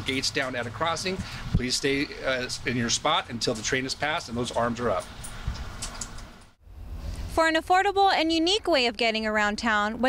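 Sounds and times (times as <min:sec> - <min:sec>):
low rumble: 0:06.6 - 0:08.2.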